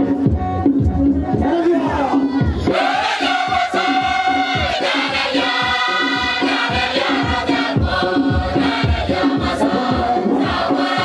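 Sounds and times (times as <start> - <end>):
steady low beat: 0.0 - 11.0
choir singing a hymn: 2.6 - 11.0.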